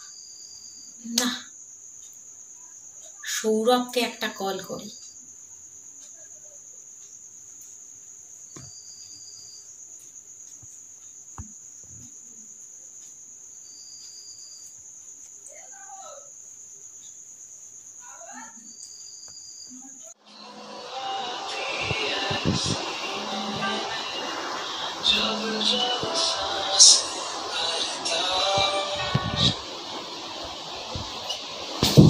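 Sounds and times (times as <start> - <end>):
cricket trilling: 0.0 - 32.0
music: 20.2 - 32.0.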